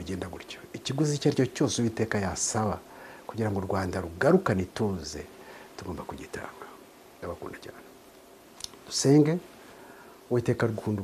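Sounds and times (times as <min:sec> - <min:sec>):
man speaking softly: 0:00.0 - 0:08.0, 0:08.7 - 0:09.5, 0:10.3 - 0:11.0.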